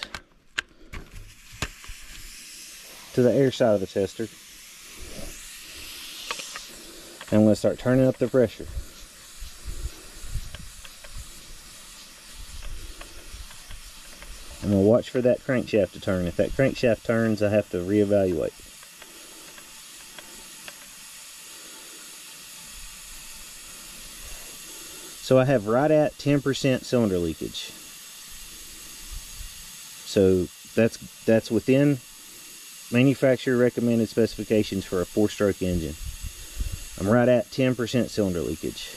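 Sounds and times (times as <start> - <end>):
compressed air hissing: 0.0 - 38.9.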